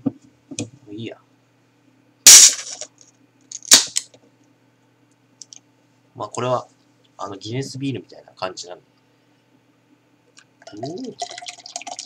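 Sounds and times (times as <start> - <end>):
sharp snap: 3.6 - 4.0.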